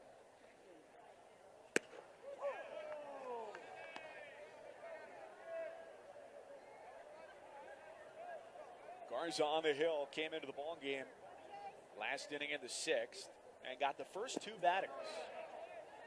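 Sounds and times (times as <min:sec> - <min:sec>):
bat cracking baseball: 0:01.7 - 0:02.2
fans shouting: 0:02.2 - 0:09.2.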